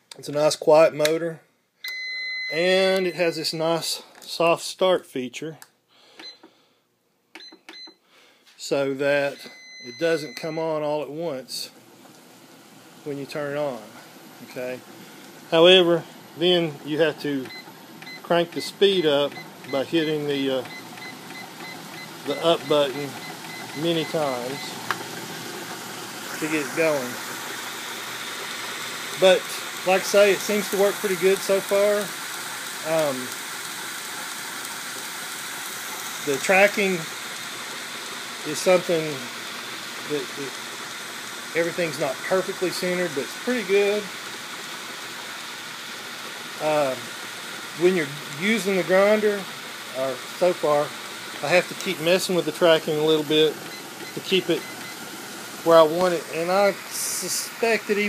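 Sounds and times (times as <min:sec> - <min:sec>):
belt grinder hissing: 0:12.7 - 0:58.0.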